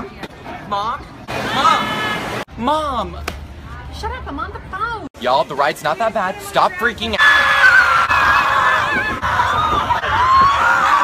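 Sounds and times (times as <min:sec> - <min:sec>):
people screaming on roller coaster: 0:07.2 - 0:11.0.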